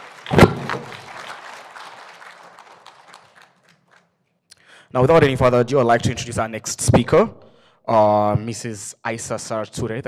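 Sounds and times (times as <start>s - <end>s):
audience applause: 0.0s - 4.1s
loud thump: 0.3s - 0.9s.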